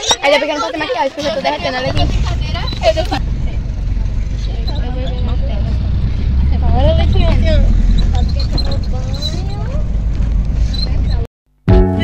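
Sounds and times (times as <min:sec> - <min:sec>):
road noise: 0:00.0 - 0:11.3
van engine rumble: 0:00.6 - 0:11.3.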